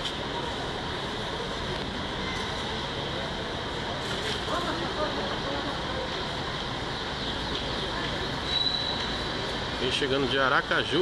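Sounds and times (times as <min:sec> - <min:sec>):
bus terminal hum: 0:00.0 - 0:11.0
faint voices: 0:00.0 - 0:11.0.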